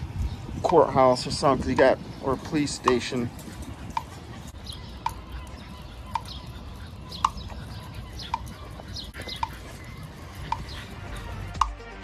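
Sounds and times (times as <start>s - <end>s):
street background noise: 0.0s - 12.0s
crossing signal chirping tick: 3.9s - 11.8s.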